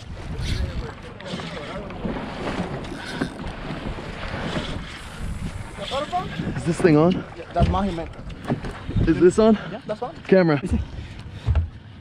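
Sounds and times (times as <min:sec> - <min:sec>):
wind buffeting microphone: 0:00.0 - 0:11.7
water washing against hull: 0:00.0 - 0:12.0.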